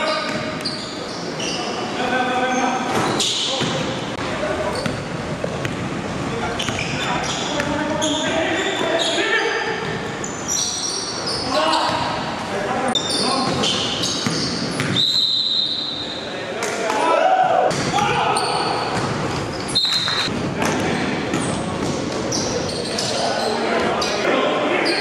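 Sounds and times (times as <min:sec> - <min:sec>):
referee's whistle: 0:14.4 - 0:16.2.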